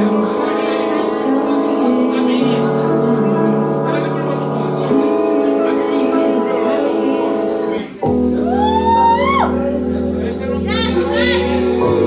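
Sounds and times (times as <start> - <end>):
live music sustained chord: 0.0 - 12.0.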